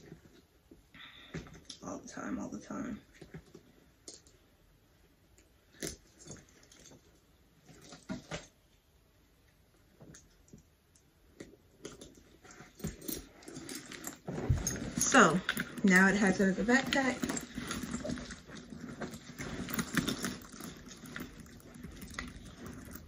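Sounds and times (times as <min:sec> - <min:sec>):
bag rustling and clicking: 0:05.7 - 0:08.6, 0:11.4 - 0:23.0.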